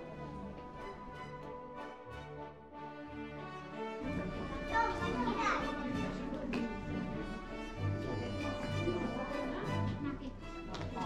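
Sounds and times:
orchestral background music: 0.0s - 11.0s
children calling and chattering: 4.5s - 6.6s.

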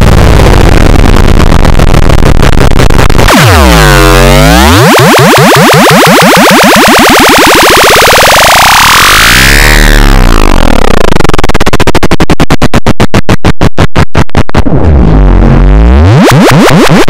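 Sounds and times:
phone startup jingle with pitch sweeps: 3.3s - 10.0s.

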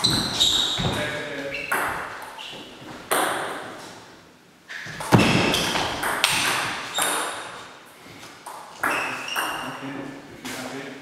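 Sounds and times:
table tennis ball struck by bats: 3.1s - 3.6s, 4.9s - 7.5s
ball bouncing on table: 4.9s - 7.4s, 8.5s - 9.7s.

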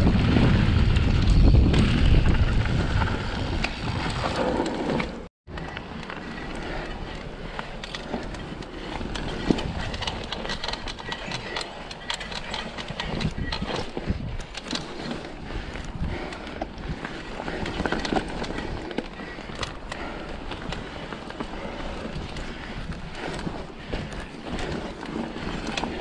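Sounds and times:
wind buffeting microphone: 0.0s - 4.4s, 8.1s - 26.0s
bike clicks and rattles: 0.0s - 26.0s
tyre noise on dirt: 0.0s - 26.0s.

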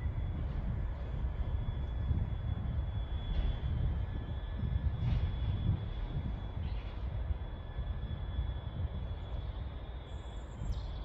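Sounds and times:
electric train rumbling: 0.0s - 11.0s.

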